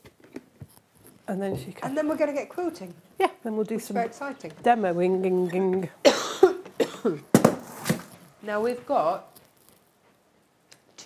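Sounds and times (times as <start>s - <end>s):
woman coughing: 6.0s - 7.3s.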